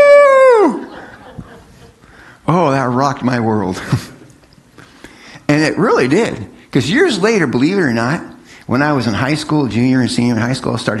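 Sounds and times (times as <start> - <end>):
man wailing cry: 0.0 - 1.0.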